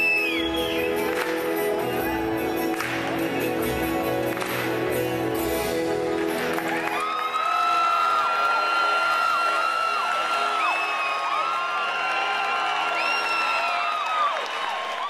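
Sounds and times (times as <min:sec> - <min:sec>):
audience cheering and clapping: 0:00.0 - 0:15.0
high whoops and screams: 0:06.7 - 0:15.0.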